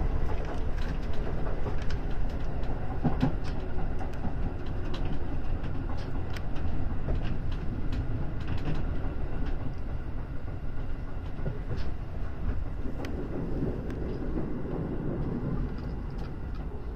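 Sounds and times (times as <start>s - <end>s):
electric train rumbling on rails: 0.0s - 16.9s
sharp clicks of train wheels: 0.0s - 16.9s.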